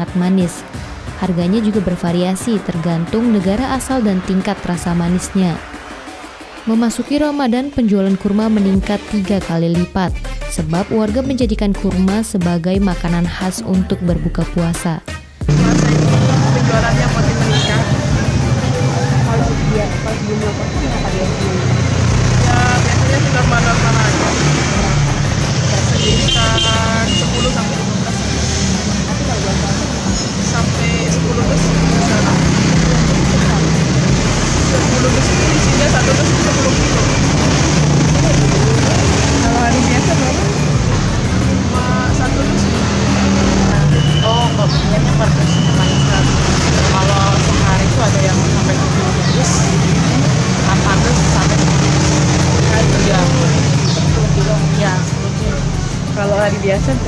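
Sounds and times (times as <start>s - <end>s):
street traffic rumble: 0.0s - 57.0s
vehicle horn toot: 17.3s - 18.1s, 25.9s - 27.8s, 43.8s - 44.7s.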